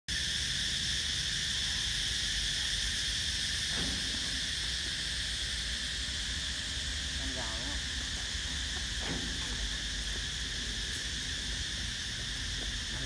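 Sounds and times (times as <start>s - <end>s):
insects droning: 0.1s - 13.0s.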